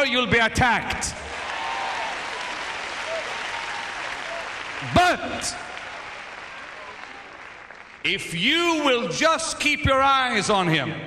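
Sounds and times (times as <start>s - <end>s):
crowd applauding: 1.2s - 8.8s.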